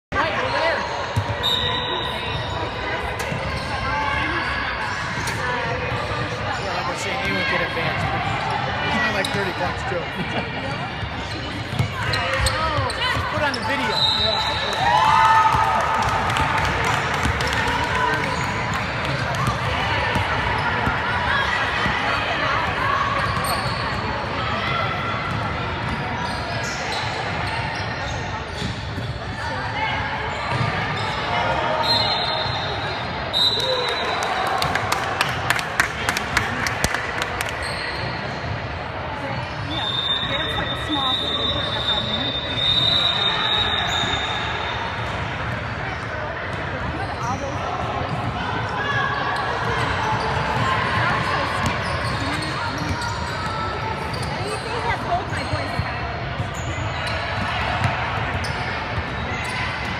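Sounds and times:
voices in echoing gym: 0.0s - 59.9s
spectators talking: 0.1s - 59.9s
sneakers squeaking: 0.2s - 15.2s, 16.6s - 34.9s, 36.3s - 59.9s.

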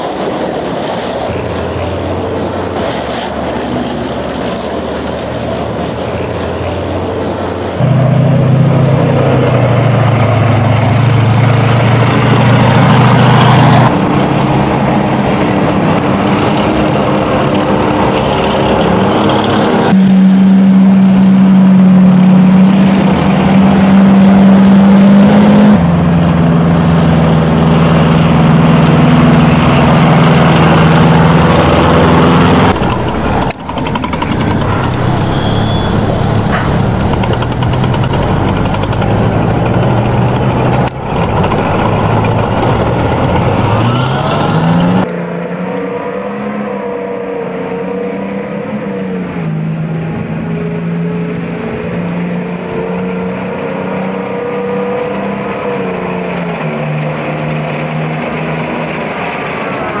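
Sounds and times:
tank engine driving by: 0.0s - 60.0s
tracked vehicle engine approaching: 0.0s - 60.0s.

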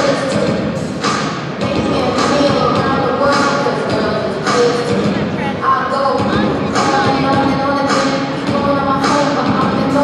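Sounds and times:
crowd voices: 0.0s - 10.0s
music in a hall: 0.0s - 10.0s.

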